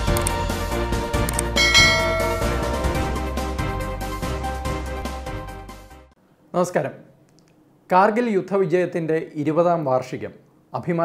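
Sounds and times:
background music: 0.0 - 6.1
bright bell-like chime: 1.6 - 3.4.

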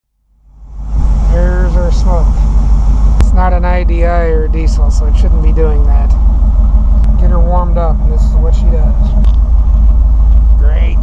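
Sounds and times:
engine idling: 0.3 - 11.0.

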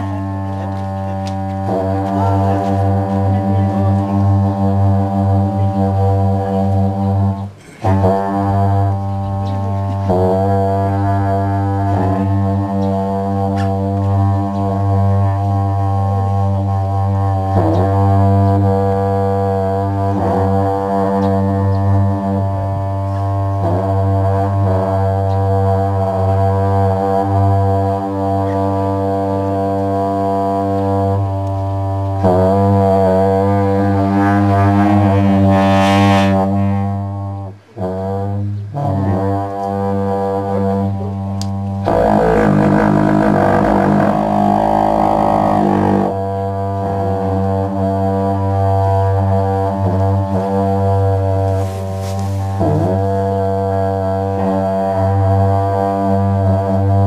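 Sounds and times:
long horns droning: 0.0 - 57.0.

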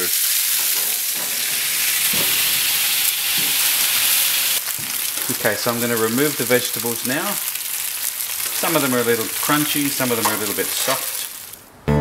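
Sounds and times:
food sizzling on a hotplate: 0.0 - 11.6.

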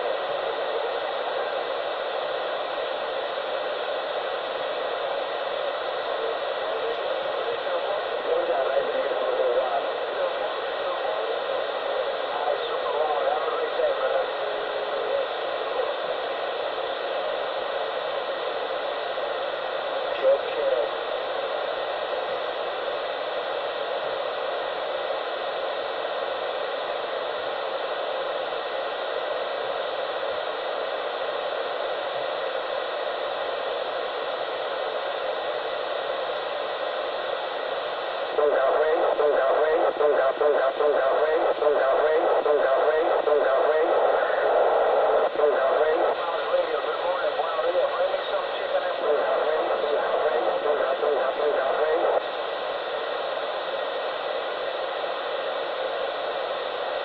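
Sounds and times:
muffled static hiss: 0.0 - 57.0.

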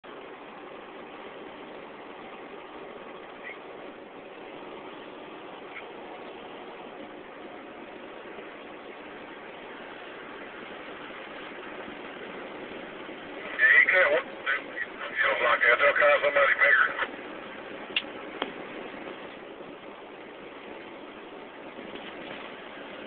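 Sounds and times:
truck road and engine noise: 0.0 - 23.0.

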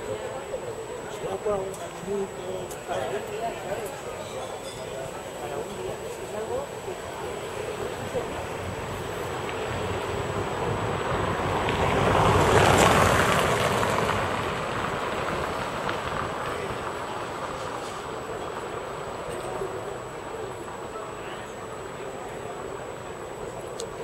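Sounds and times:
road vehicle passing: 5.5 - 20.9.

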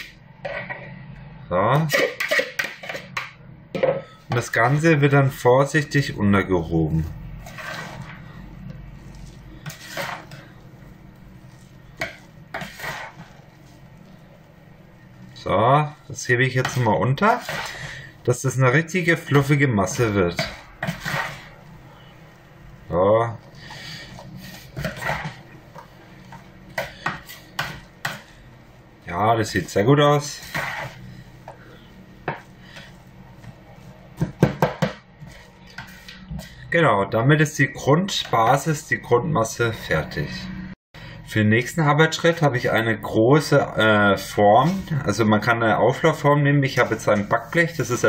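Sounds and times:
metal spoon scraping a mixing bowl: 1.9 - 3.2, 7.4 - 8.2, 9.1 - 10.5, 11.6 - 13.4, 16.6 - 18.0, 19.3 - 21.6, 24.1 - 25.4, 30.2 - 31.1.

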